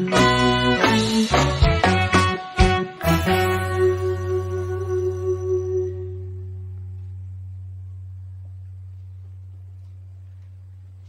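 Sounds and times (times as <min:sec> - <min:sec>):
reggae band chord ringing: 0:00.0 - 0:09.0
steady low hum: 0:03.8 - 0:11.0.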